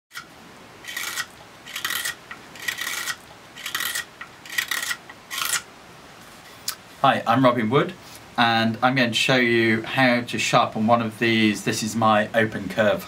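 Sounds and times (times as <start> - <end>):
knife rasping on abrasive paper: 0.9 - 5.7.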